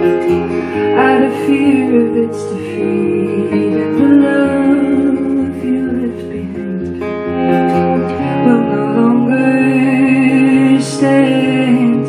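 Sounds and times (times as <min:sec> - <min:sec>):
acoustic guitar strumming: 0:00.0 - 0:12.0
woman singing: 0:00.7 - 0:12.0.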